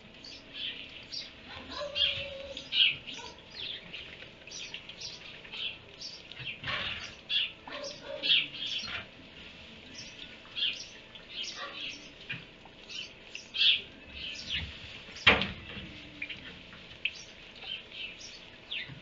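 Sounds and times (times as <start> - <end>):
faint steady background noise: 0.0 - 19.0
small birds chirping: 0.0 - 19.0.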